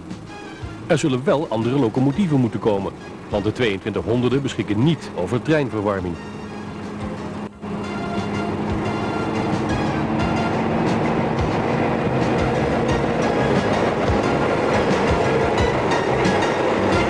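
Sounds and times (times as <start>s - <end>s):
diesel locomotive engine running: 0.0s - 17.0s.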